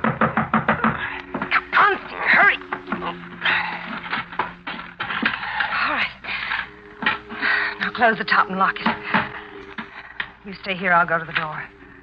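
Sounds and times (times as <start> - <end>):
straining breaths: 0.7 - 10.5, 11.6 - 12.0
low sustained music notes: 1.0 - 12.0.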